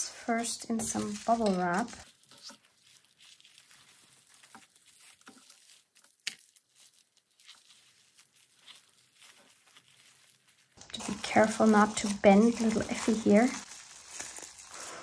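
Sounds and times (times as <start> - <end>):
bubble wrap crinkling: 0.0 - 15.0.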